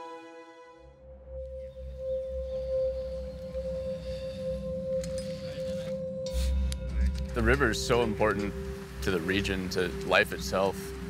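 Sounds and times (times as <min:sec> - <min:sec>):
steady ringing tone: 0:01.0 - 0:11.0
low rumble: 0:06.0 - 0:11.0.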